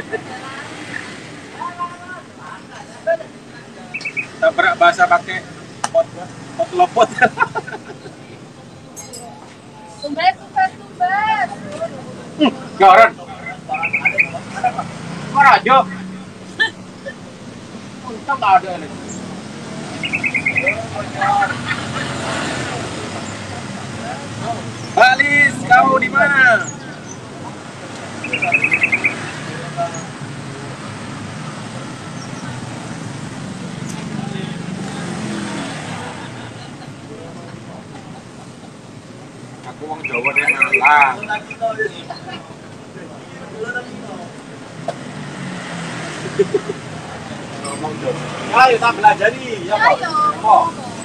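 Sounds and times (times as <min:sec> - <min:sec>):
faint voices: 0:00.0 - 0:51.0
traffic hum: 0:00.0 - 0:51.0.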